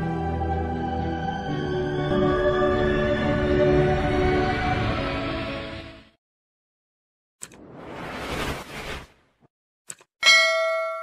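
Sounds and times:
notification bell ding: 10.2 - 11.0.

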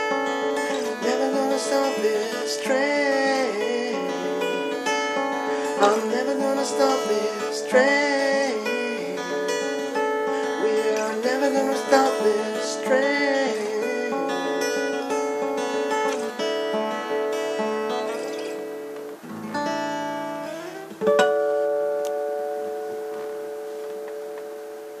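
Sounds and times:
acoustic guitar picking and strumming: 0.0 - 25.0.

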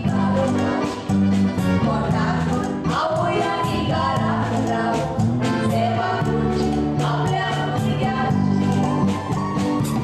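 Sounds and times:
two women singing a duet: 0.0 - 1.0, 1.6 - 9.4
instrumental accompaniment: 0.0 - 10.0.

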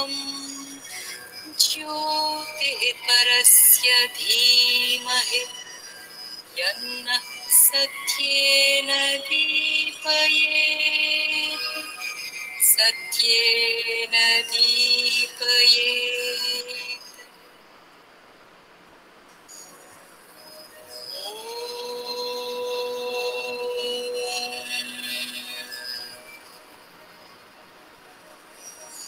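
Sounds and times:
person chanting a mantra: 0.0 - 5.6, 6.6 - 12.0, 12.6 - 17.2, 21.1 - 26.3
faint hiss: 0.0 - 29.0
chanted held note: 20.8 - 26.7.

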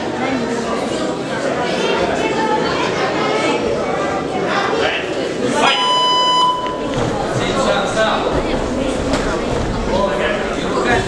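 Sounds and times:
crowd murmur: 0.0 - 11.0
electronic buzzer tone: 5.6 - 6.8.

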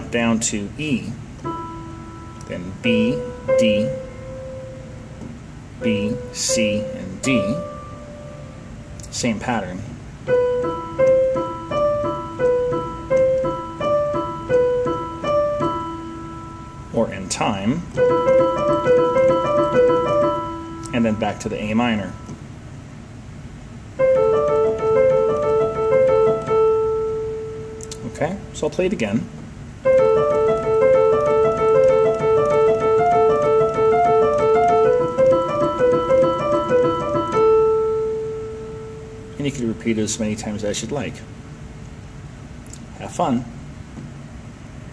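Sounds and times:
piano broken-chord pattern: 0.0 - 44.9.

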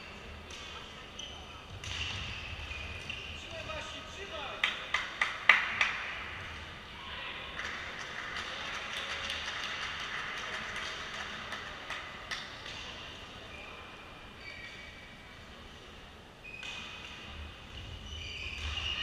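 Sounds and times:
racket hitting shuttlecock: 1.7 - 2.4.

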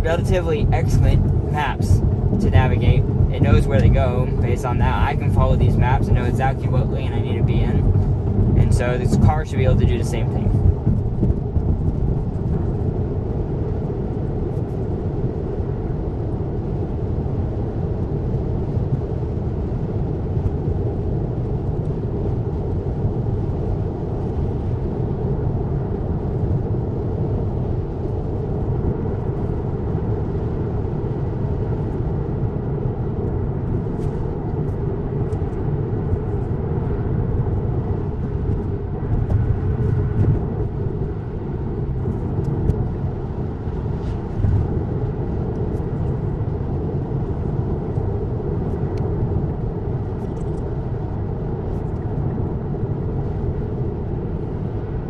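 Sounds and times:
road and tyre rumble in car: 0.0 - 55.0.

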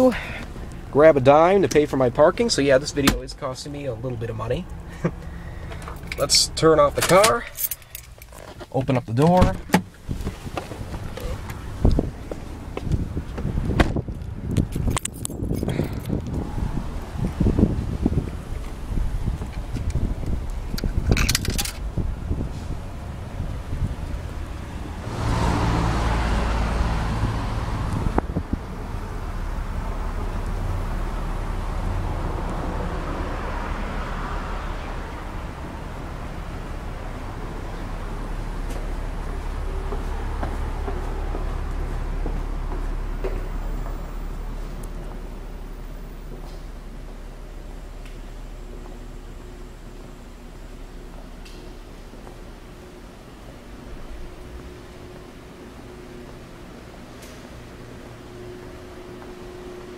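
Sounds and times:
low rumble of city traffic: 0.0 - 59.9
vehicle passing: 21.8 - 47.8.

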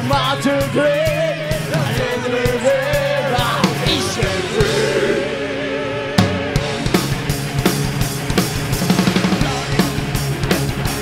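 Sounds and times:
drums striking steady beat: 0.0 - 11.0
live rock band: 0.0 - 11.0.

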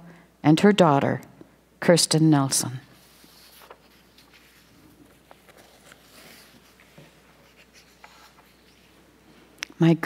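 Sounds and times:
paper sheets rustling: 3.0 - 9.0.

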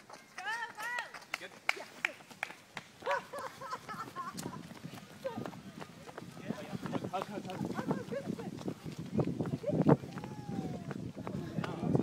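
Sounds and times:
running footsteps on footpath: 0.0 - 12.0.

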